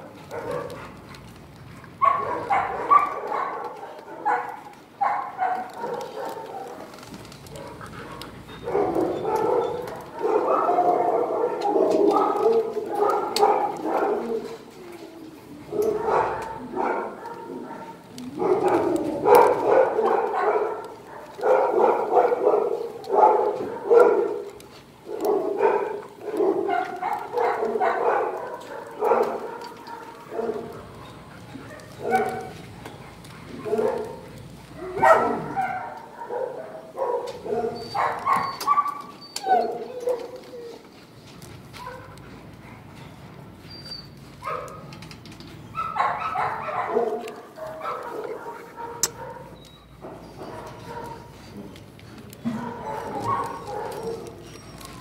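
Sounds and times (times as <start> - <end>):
dogs barking: 0.0 - 40.9, 41.6 - 43.2, 44.0 - 55.0.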